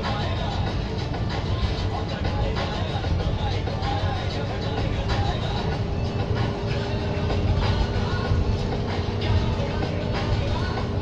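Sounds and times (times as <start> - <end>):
song playing: 0.0 - 11.0
vehicle engine and road rumble: 0.0 - 11.0.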